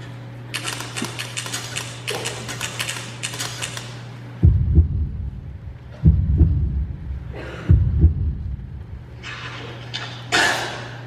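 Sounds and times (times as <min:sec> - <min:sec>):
steady low hum: 0:00.0 - 0:11.0
typewriter keys clacking: 0:00.6 - 0:03.9.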